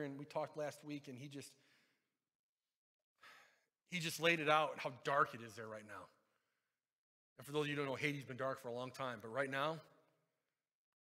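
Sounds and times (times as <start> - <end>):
man speaking: 0.0 - 1.6, 3.9 - 6.2, 7.4 - 9.9
man breathing: 1.6 - 2.2, 3.2 - 3.8.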